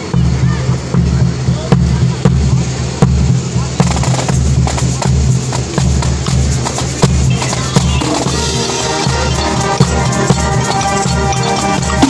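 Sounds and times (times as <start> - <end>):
marching band playing: 0.0 - 12.0
sharp drum hits: 0.0 - 12.0
low brass bass line: 7.9 - 12.0.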